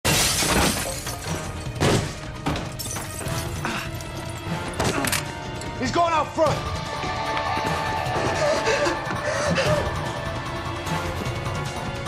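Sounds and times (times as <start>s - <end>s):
window pane shattering: 0.0s - 3.8s
dramatic score music: 1.0s - 12.0s.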